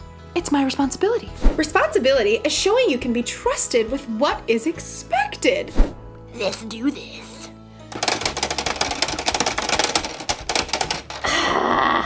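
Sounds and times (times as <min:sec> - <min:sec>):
rapid plastic clicking and clattering: 0:07.9 - 0:11.3.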